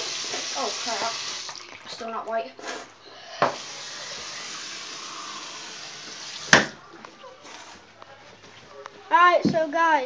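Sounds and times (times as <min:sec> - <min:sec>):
water running from tap: 0:00.0 - 0:02.1, 0:03.4 - 0:06.8.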